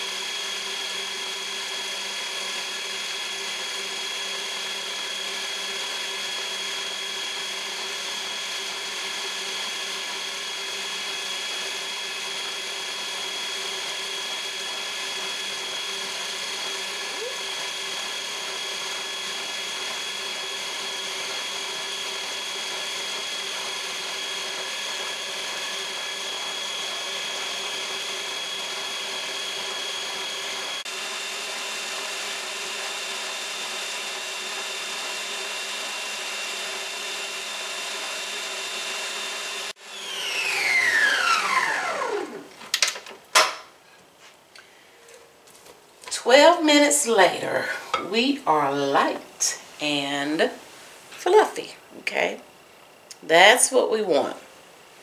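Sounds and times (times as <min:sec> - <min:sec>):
stand mixer motor whine: 0:00.0 - 0:42.5.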